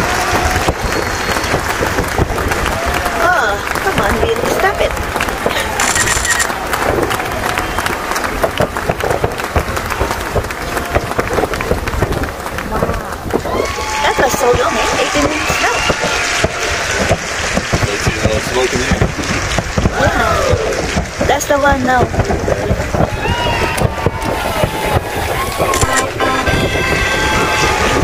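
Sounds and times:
distant fireworks bangs and crackles: 0.0s - 28.0s
people's voices: 0.0s - 28.0s.

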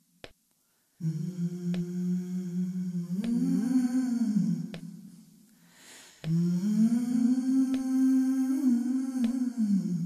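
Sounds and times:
woman humming a held note: 1.0s - 5.1s, 6.2s - 10.0s.

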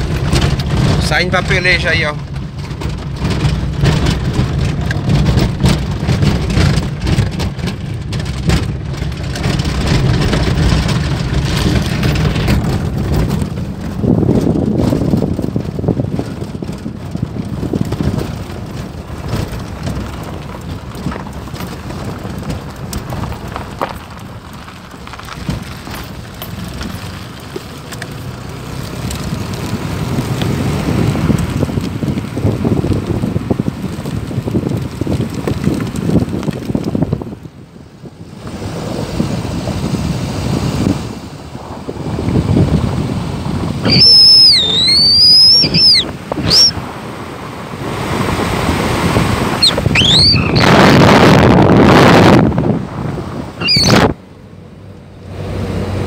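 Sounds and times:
grit and gravel clicks: 0.0s - 54.2s
wind noise on microphone: 0.0s - 54.4s
car engine: 0.0s - 56.0s
tyres rumbling on dirt: 0.0s - 56.0s.

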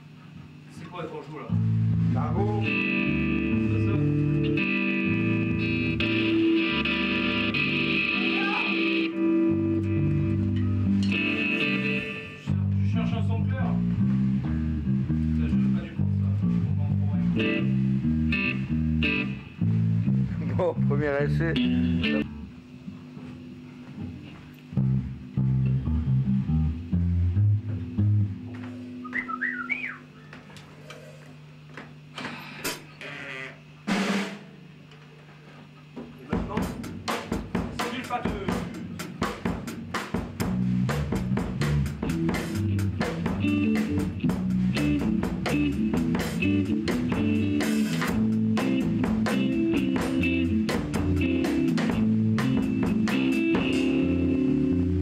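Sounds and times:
drum kit: 1.5s - 22.4s, 33.8s - 34.8s, 36.0s - 55.0s
electric guitar: 1.5s - 29.8s, 38.5s - 55.0s
bass guitar: 1.5s - 30.4s, 38.3s - 55.0s.

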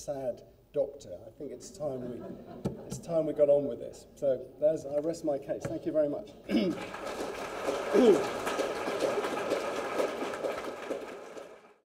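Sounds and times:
audience applauding: 6.7s - 11.8s.

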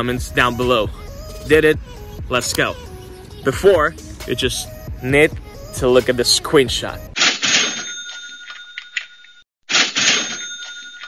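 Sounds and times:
cash register ka-ching: 7.2s - 11.0s.

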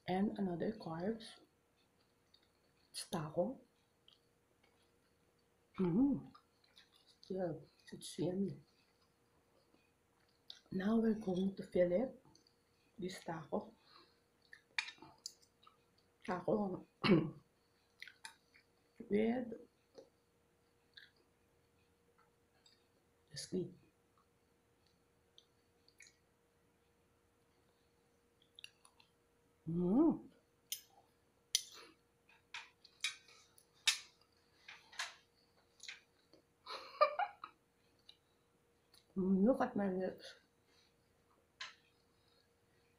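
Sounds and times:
person chewing food: 1.4s - 3.0s, 3.6s - 10.7s, 12.2s - 13.0s, 13.7s - 16.3s, 16.9s - 19.0s, 19.6s - 23.3s, 24.0s - 29.3s, 30.4s - 36.6s, 37.5s - 39.1s, 40.5s - 42.9s.

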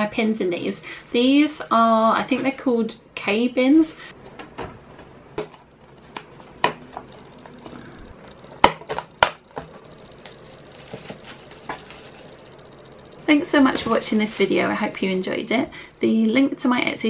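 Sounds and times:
cardboard handling: 10.2s - 12.4s.

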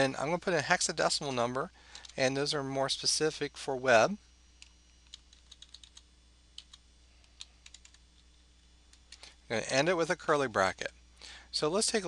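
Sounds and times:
keyboard keys clicking: 5.1s - 6.0s, 7.6s - 8.0s.

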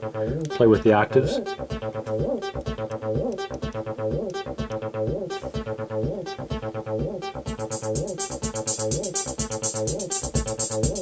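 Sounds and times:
synthesizer bass line with pitch slides: 0.0s - 11.0s.

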